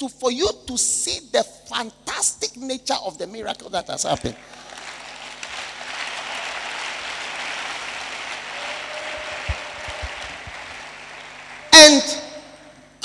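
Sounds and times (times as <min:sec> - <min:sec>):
congregation applauding: 0:04.2 - 0:12.6.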